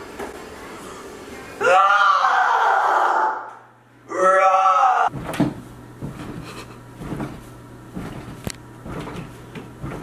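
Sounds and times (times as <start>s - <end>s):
person straining vocal effort: 4.1s - 5.1s.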